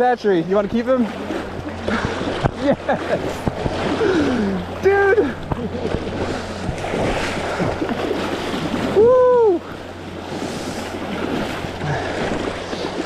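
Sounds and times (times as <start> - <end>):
water splashing and churning: 0.0 - 13.0
person shouting: 8.9 - 9.6.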